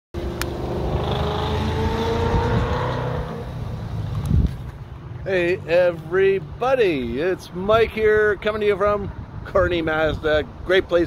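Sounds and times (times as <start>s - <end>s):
vehicle engine accelerating: 0.2s - 4.7s.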